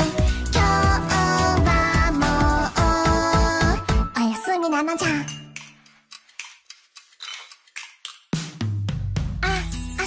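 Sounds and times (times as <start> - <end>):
person singing over music: 0.0 - 4.2.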